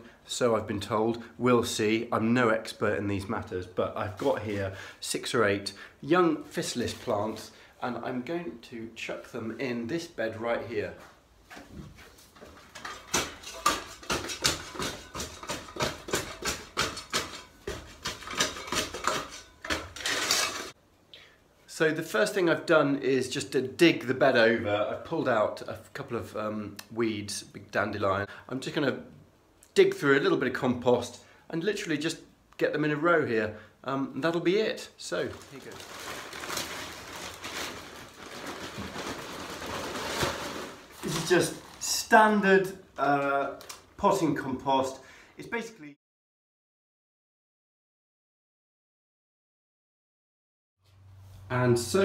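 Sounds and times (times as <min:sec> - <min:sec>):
scrapes: 0:11.5 - 0:20.8
plastic sack crinkling: 0:17.3 - 0:20.8, 0:35.0 - 0:42.0.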